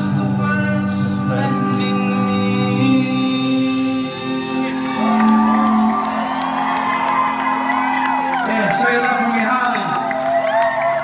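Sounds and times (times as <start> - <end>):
live rock band: 0.0 - 11.0
crowd whooping and cheering: 4.1 - 11.0.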